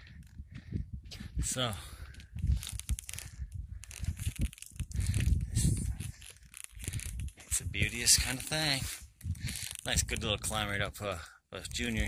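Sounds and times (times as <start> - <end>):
wind buffeting microphone: 0.0 - 11.1.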